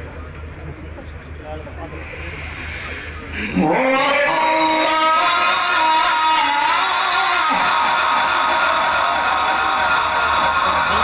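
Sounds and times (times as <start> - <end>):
man chanting through loudspeaker: 3.5 - 9.5.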